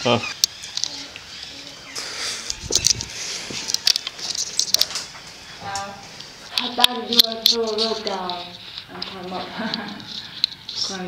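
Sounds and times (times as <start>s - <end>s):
person speaking: 5.6s - 10.0s
footsteps on loose stones: 6.6s - 9.3s.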